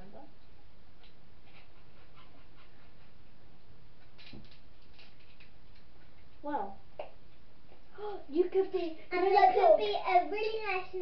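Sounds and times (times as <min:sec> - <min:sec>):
dog making faint sounds: 0:01.0 - 0:03.4.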